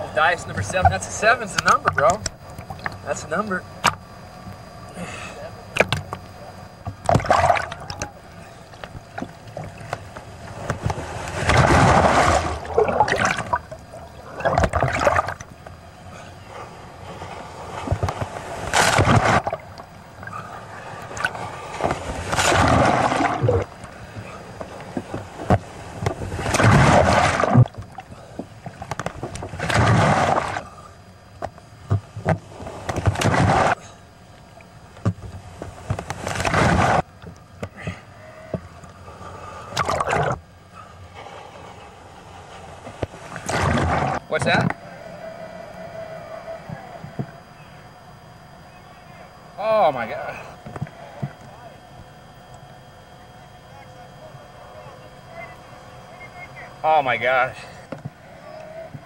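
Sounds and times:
ocean water splashing and rushing: 7.1s - 8.2s, 9.1s - 15.5s, 17.8s - 20.0s, 21.0s - 23.9s, 24.9s - 28.0s, 43.2s - 44.7s.

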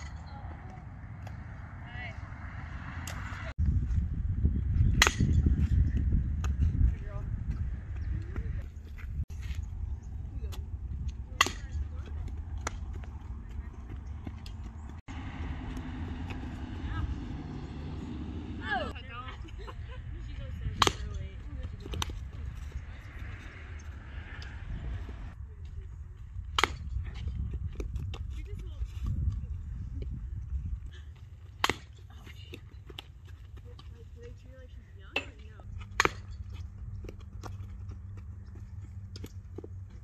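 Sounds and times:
distant players' voices: 0.0s - 3.5s, 4.6s - 40.0s
wind rumble on microphone: 0.0s - 31.1s, 33.6s - 40.0s
bat cracking against balls: 26.5s - 27.0s, 31.5s - 33.1s, 35.2s - 36.4s.

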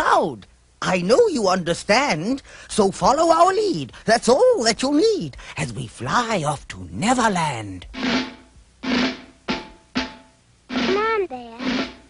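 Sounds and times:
ringing drum hits: 7.9s - 12.0s.

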